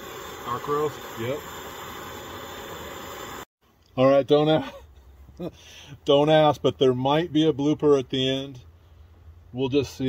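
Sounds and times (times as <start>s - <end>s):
camp stove burner hissing: 0.0s - 3.5s.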